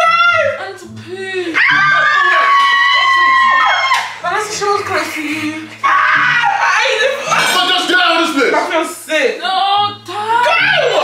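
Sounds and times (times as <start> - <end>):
other voices: 0.0 - 11.0
person screaming: 1.6 - 4.1, 5.8 - 7.6.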